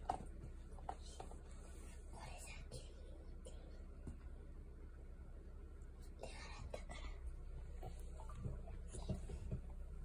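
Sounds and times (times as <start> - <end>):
faint low hum: 0.0 - 10.0
soft breathy whisper: 0.8 - 4.2, 6.0 - 9.7.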